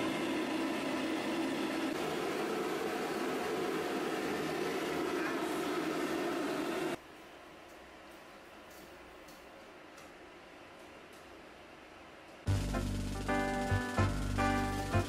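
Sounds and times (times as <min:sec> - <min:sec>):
hair dryer blowing: 0:00.0 - 0:07.0.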